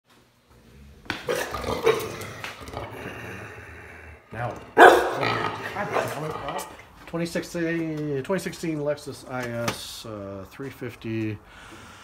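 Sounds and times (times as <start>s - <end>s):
dog barking: 4.8s - 5.3s.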